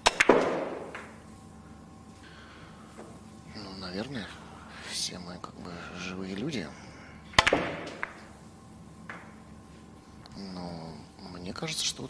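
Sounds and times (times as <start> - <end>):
billiard balls clacking: 0.0 - 1.2, 7.3 - 8.3, 9.0 - 9.5
cue striking ball: 0.0 - 1.2, 7.4 - 8.2.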